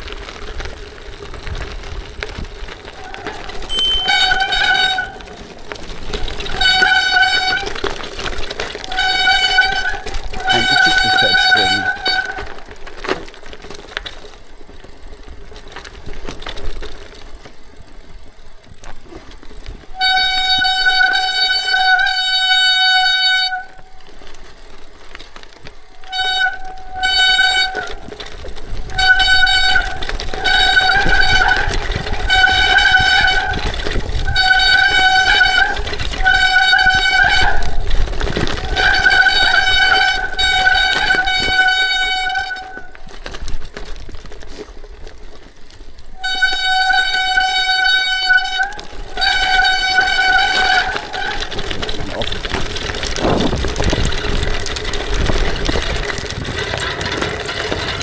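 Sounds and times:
tyres rumbling over gravel: 0:00.0 - 0:58.0
bicycle brakes squealing: 0:02.6 - 0:13.2, 0:18.1 - 0:24.8, 0:25.7 - 0:43.4, 0:46.0 - 0:58.0.

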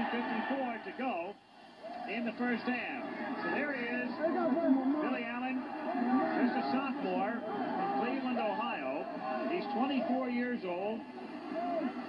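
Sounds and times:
television broadcast voice: 0:00.0 - 0:12.0.

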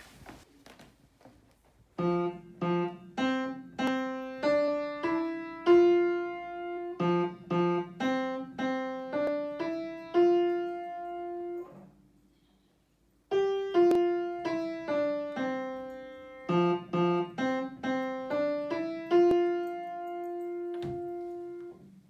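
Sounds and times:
slow piano melody: 0:02.0 - 0:12.0, 0:13.3 - 0:22.0.

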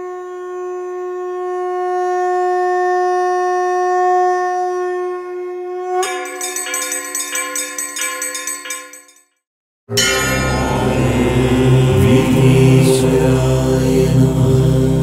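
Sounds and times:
bell and chime strikes: 0:06.0 - 0:09.2, 0:10.0 - 0:11.5.

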